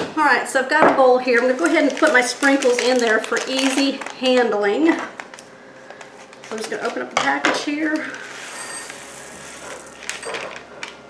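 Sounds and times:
plastic packet tearing and crinkling: 1.3 - 4.4
sprinkles rustling into a bowl: 8.2 - 10.4.

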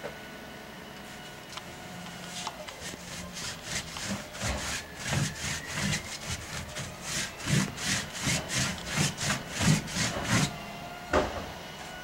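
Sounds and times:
brush scrubbing on canvas: 2.3 - 10.6.

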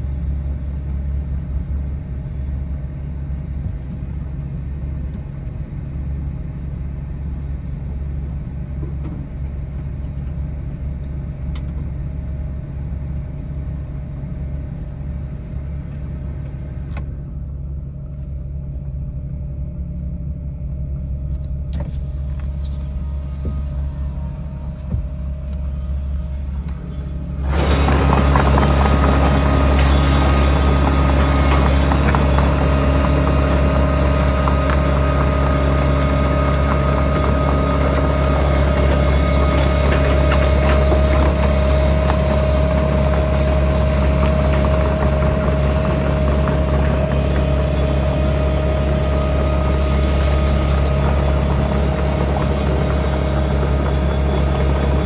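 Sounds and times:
excavator diesel engine drone: 0.0 - 55.0
excavator tracks clattering: 21.2 - 55.0.

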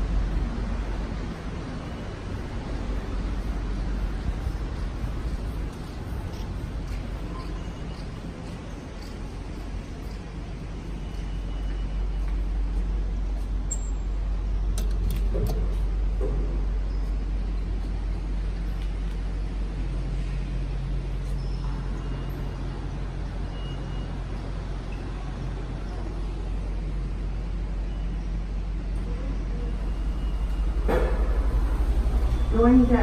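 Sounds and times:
faint steady hum: 0.0 - 33.0
station concourse background rumble: 0.0 - 33.0.

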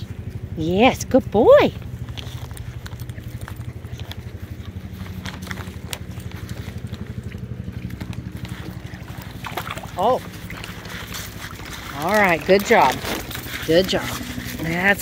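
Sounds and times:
low pulsing engine drone: 0.0 - 15.0.

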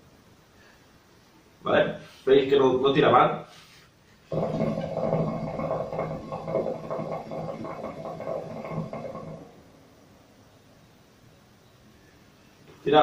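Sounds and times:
hookah water bubbling: 4.3 - 10.4.

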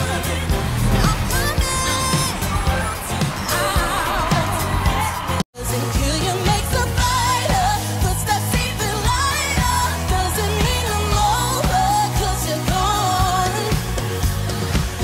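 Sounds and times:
band playing bass and beat: 0.0 - 15.0
woman singing pop song: 0.0 - 15.0.

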